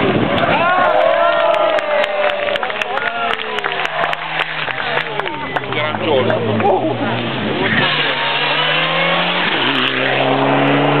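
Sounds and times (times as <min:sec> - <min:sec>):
rally car engine at high revs: 0:03.6 - 0:11.0.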